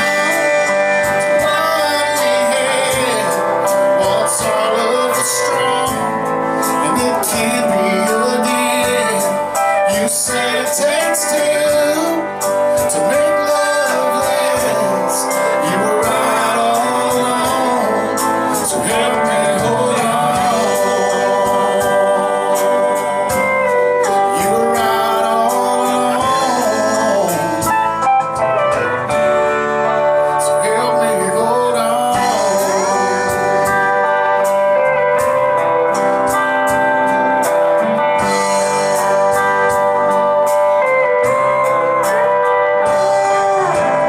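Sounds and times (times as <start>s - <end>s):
man singing: 0.0s - 36.0s
bass guitar: 0.0s - 44.0s
electric guitar: 0.0s - 44.0s
steady drum beat: 0.0s - 44.0s.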